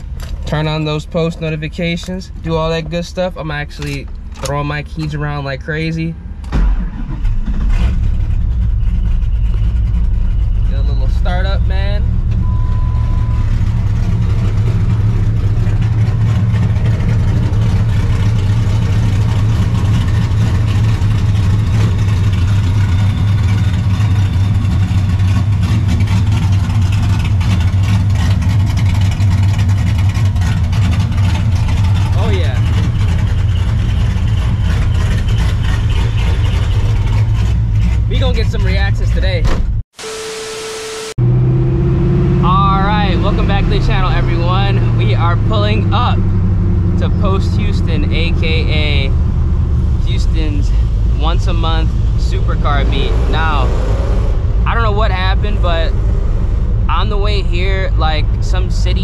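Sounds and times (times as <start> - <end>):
car engine idling: 0.0 - 39.4, 40.0 - 59.0.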